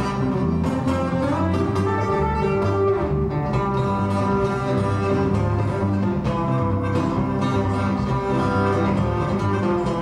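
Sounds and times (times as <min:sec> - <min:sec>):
plucked bass guitar: 0:00.0 - 0:10.0.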